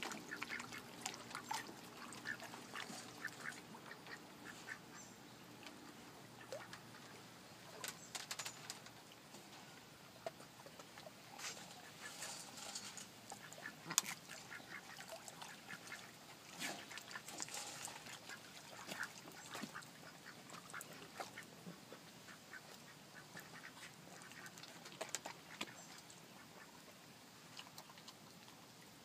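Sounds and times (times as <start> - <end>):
ducks quacking: 0.0 - 5.2, 6.2 - 7.2, 13.3 - 26.7.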